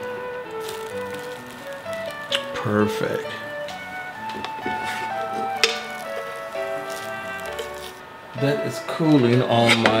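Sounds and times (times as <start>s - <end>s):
gentle background music: 0.0s - 10.0s.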